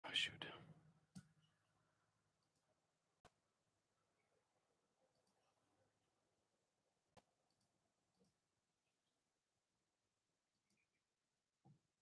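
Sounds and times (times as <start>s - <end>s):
breathy whisper: 0.0s - 0.8s.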